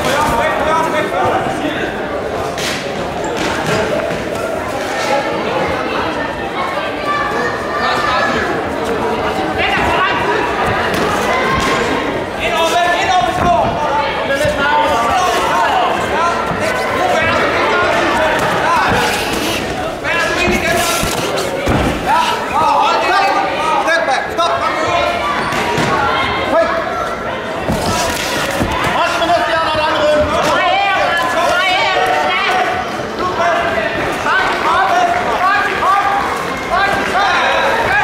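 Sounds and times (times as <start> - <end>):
voices shouting in a hall: 0.0 - 38.0.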